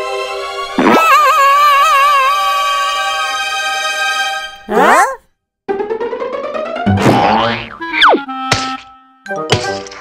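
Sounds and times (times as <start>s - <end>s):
cartoon music: 6.5s - 9.5s.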